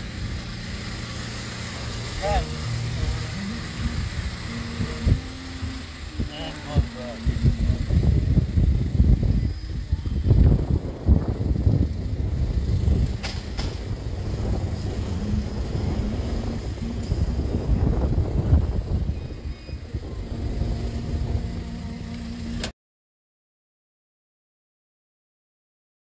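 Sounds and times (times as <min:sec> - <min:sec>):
car engine hum and road rumble: 0:00.0 - 0:22.7.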